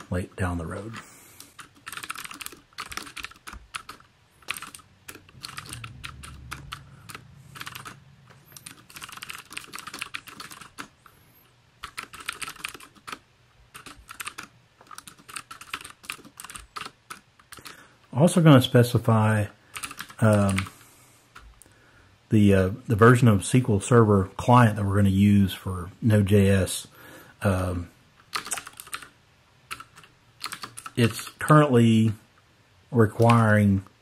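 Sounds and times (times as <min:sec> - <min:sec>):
computer keyboard typing: 0:00.8 - 0:11.1, 0:11.8 - 0:17.8, 0:19.7 - 0:20.8, 0:28.2 - 0:29.1, 0:29.7 - 0:31.1, 0:33.2 - 0:33.5.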